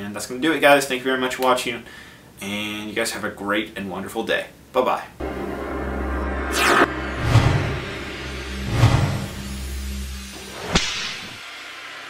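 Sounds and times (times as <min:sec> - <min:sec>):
ambient background: 0:05.2 - 0:11.4
deep low hit: 0:05.2 - 0:11.4
whoosh: 0:05.2 - 0:12.0.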